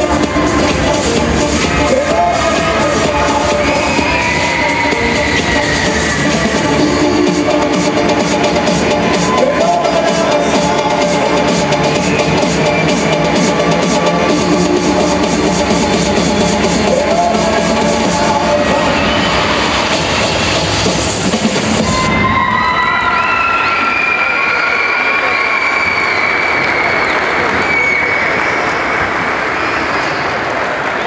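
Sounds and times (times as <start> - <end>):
crowd cheering and applauding: 0.0 - 31.0
high-pitched shouts: 1.7 - 7.4, 9.0 - 12.8, 21.8 - 28.5.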